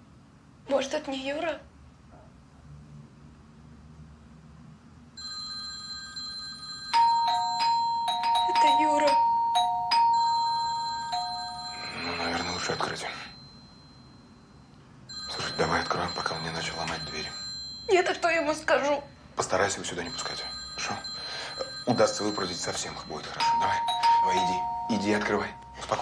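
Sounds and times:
doorbell ringing: 5.2s - 19.0s, 19.8s - 26.0s.

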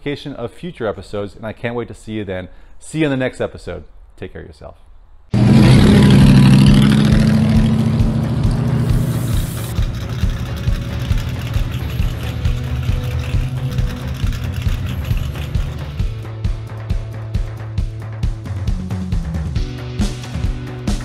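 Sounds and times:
truck engine running: 5.4s - 16.3s
background music with beat: 7.2s - 21.0s.

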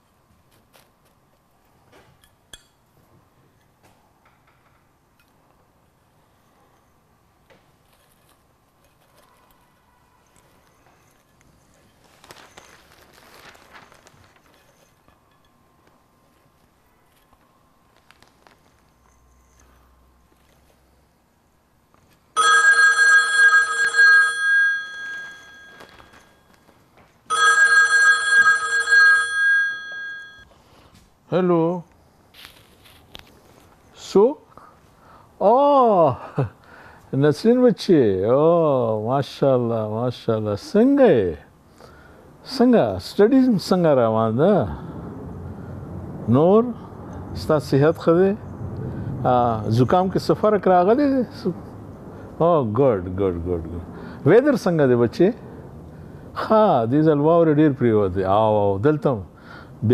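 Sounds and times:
desk telephone ringing: 22.3s - 26.6s, 27.2s - 30.5s.

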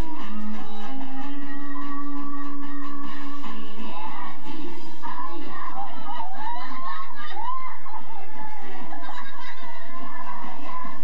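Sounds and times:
boys laughing: 5.9s - 10.4s.

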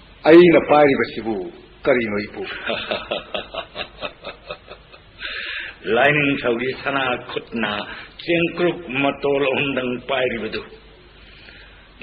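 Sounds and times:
breathy exhale hiss: 5.2s - 5.8s, 11.1s - 12.0s.

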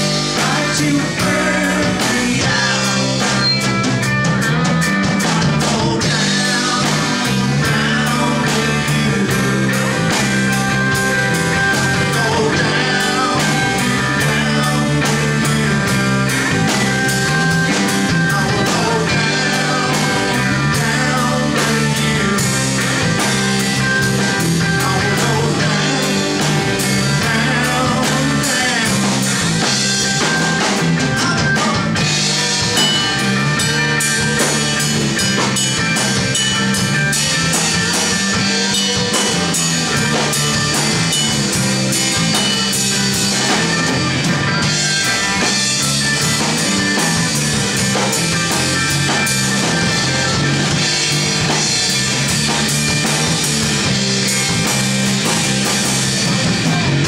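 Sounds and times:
bass guitar: 0.0s - 57.0s
drums keeping a steady beat: 0.0s - 57.0s
electric guitars: 0.0s - 57.0s.

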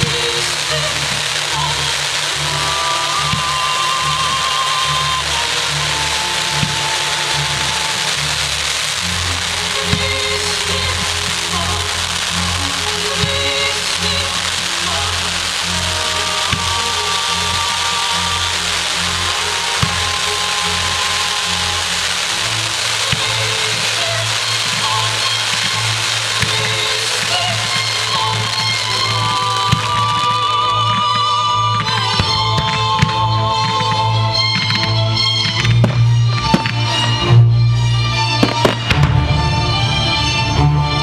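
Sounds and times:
firework bangs: 0.0s - 37.3s, 38.3s - 40.3s
firework fountains hissing: 0.0s - 41.0s
music: 0.0s - 41.0s.

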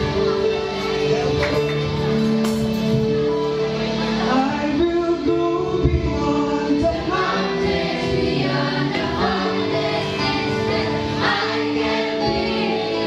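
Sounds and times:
instrumental accompaniment: 0.0s - 13.0s
congregation singing worship song: 3.5s - 13.0s.

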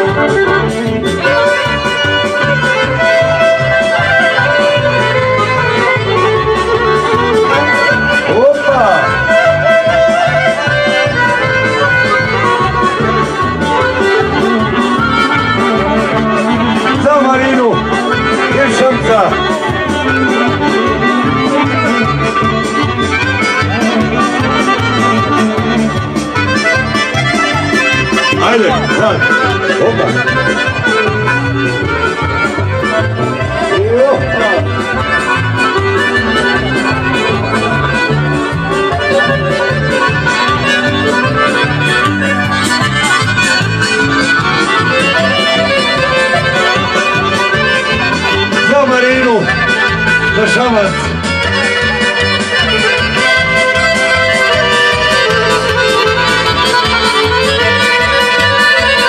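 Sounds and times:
accordion folk dance music: 0.0s - 59.0s.

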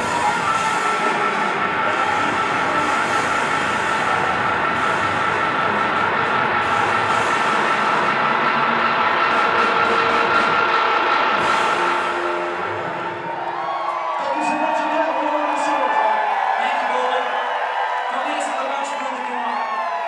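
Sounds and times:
cymbals crashing: 0.0s - 13.8s
live rock band playing: 0.0s - 13.8s.

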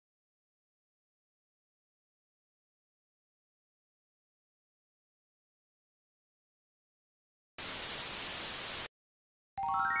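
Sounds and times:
tv static hiss: 7.6s - 8.9s.

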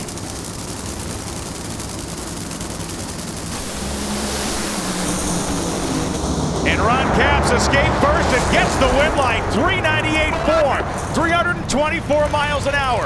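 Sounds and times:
drag racing engines rumbling: 0.0s - 13.0s.

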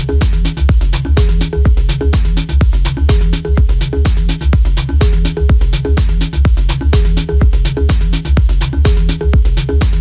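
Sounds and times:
repeating low bass line: 0.0s - 10.0s
techno kick drum: 0.0s - 10.0s.

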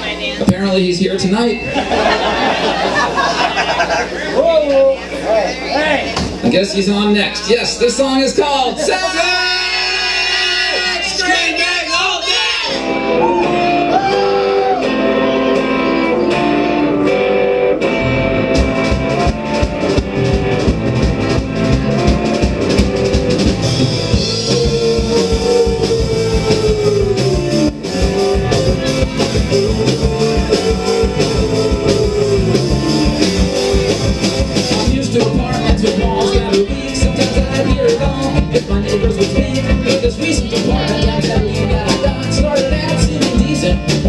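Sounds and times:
guitar: 0.0s - 44.0s
live rock band playing: 0.0s - 44.0s.

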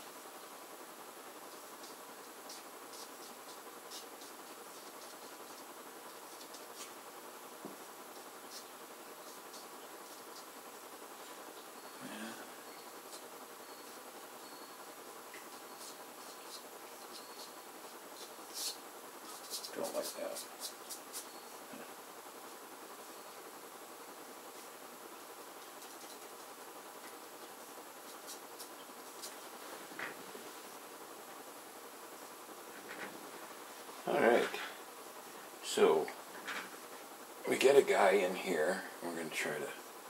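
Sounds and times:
steady low hiss: 0.0s - 40.0s
pastel stick scratching on paper: 1.5s - 7.0s, 8.1s - 10.5s, 15.4s - 21.4s.

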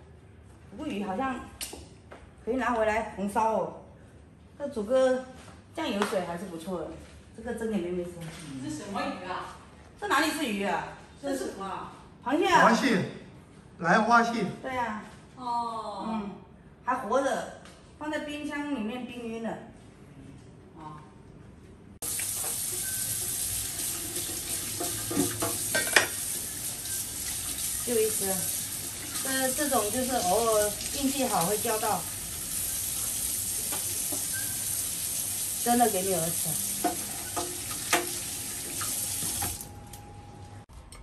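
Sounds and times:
tap running into a steel sink: 24.2s - 27.0s, 33.7s - 34.5s, 36.8s - 39.6s.

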